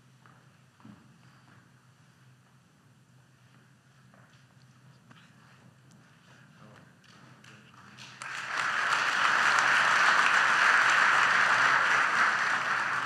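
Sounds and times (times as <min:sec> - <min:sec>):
audience applauding: 0:08.0 - 0:13.0.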